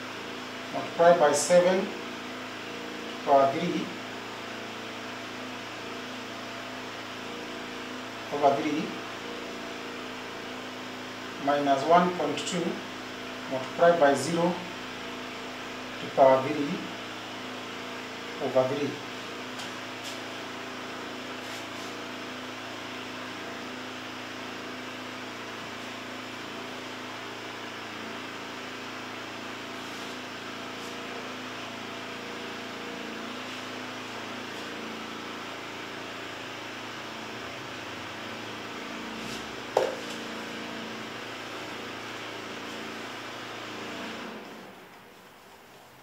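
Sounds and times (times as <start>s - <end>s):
room hum and hiss: 0.0s - 46.0s.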